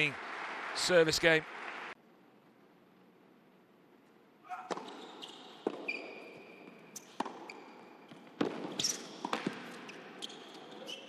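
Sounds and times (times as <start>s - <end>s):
shoes squeaking on court: 4.5s - 11.0s
racket striking tennis ball: 4.6s - 5.0s, 7.0s - 9.9s.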